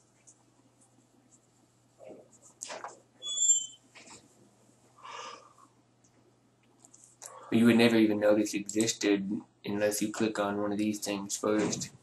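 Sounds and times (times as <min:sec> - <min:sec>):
high-pitched squeak: 0:03.2 - 0:03.8.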